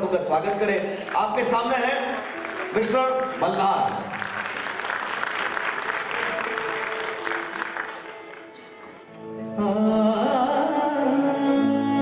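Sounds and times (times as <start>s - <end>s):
audience applauding: 0.0s - 9.1s.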